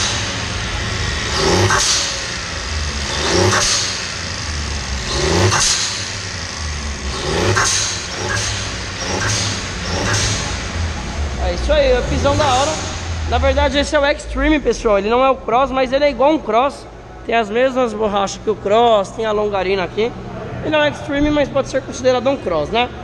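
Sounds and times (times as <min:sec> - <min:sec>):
car engine revving: 0:00.0 - 0:18.7.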